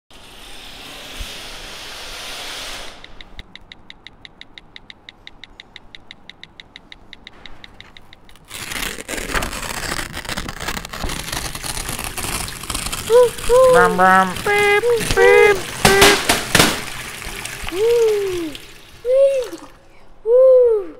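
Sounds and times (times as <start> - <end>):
hiss: 0.2 - 3.1
clicks: 3.0 - 8.3
dense crackling and rustling: 8.3 - 17.2.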